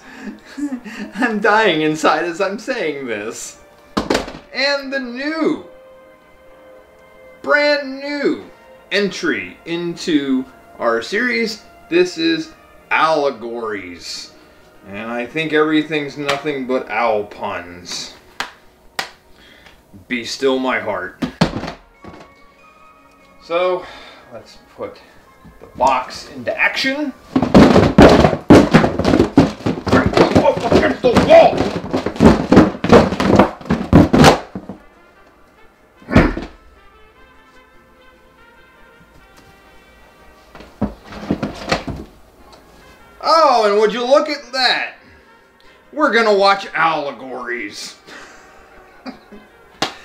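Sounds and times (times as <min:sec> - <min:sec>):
faint background music: 0:00.0 - 0:50.0
box knocking against wall: 0:04.0 - 0:04.5, 0:21.2 - 0:22.3, 0:27.3 - 0:34.9, 0:40.6 - 0:42.1
heavy thump: 0:04.0 - 0:04.5, 0:21.2 - 0:22.3, 0:27.3 - 0:34.9, 0:36.1 - 0:36.6, 0:40.6 - 0:42.1.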